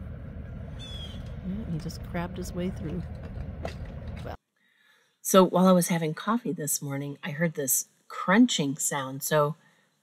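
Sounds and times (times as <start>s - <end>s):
low outdoor rumble: 0.0s - 4.4s.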